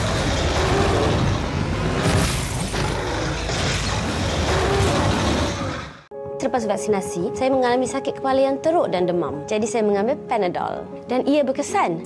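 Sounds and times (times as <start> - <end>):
faint background music: 6.1 - 12.0.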